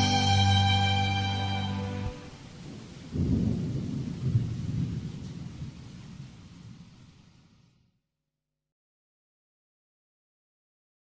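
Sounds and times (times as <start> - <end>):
thunder rumbling: 2.0 - 7.6.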